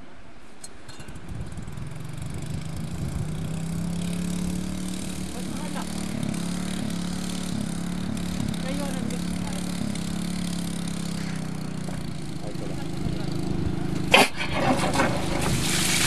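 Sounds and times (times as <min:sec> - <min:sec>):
engine-driven water pump running: 0:01.1 - 0:16.0.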